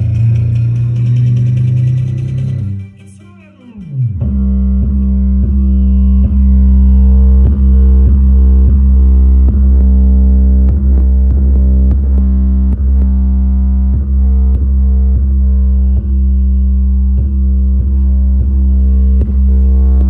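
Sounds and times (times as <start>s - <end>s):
bass-heavy music through speakers: 0.0s - 20.0s.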